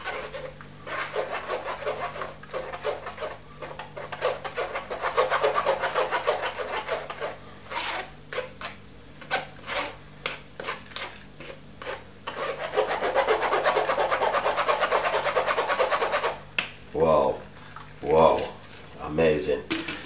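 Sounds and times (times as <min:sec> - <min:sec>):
pulp scraped through mesh strainer: 0:00.0 - 0:03.4, 0:04.0 - 0:10.0.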